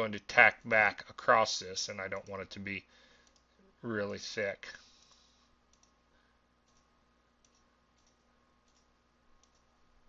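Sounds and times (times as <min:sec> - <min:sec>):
faint computer mouse clicks: 0:05.0 - 0:06.0, 0:06.7 - 0:09.7.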